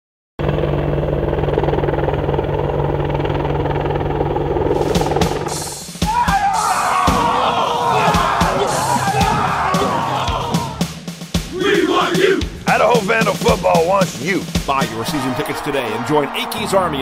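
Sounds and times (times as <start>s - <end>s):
helicopter blade chop: 0.4s - 10.9s
crowd yelling: 6.0s - 12.7s, 14.7s - 17.0s.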